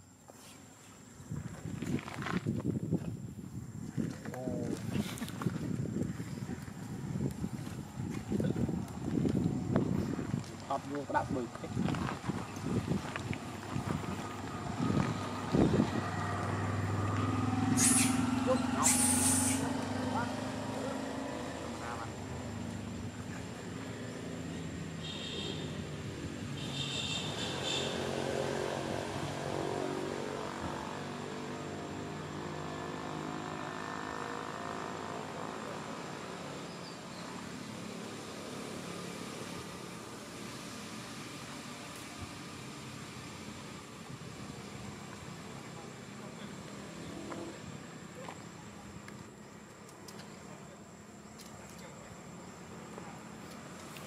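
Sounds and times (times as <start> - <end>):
vehicle engine passing: 7.9 - 49.1.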